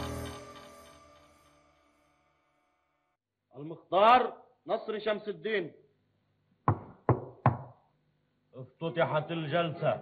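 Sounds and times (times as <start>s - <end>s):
sharp knocks on a desk: 6.7s - 7.8s.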